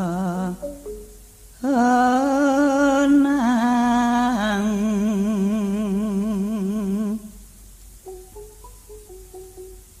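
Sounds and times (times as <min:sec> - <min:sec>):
person singing long vibrato note: 0:00.0 - 0:07.4.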